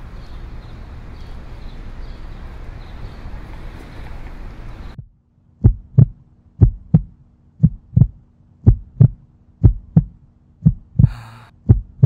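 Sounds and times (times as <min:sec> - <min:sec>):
heartbeat thumps: 0:05.0 - 0:12.0.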